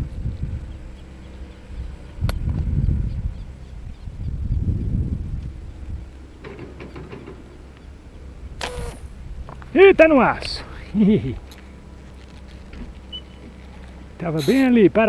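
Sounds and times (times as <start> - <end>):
wind buffeting microphone: 0.0 - 11.5.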